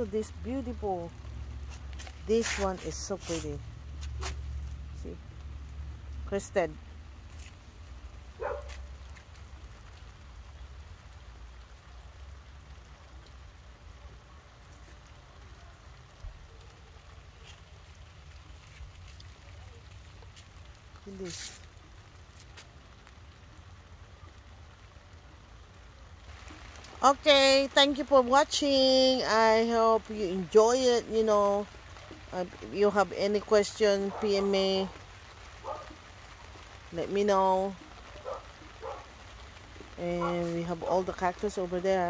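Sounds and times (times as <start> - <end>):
light rain falling: 0.0 - 42.0.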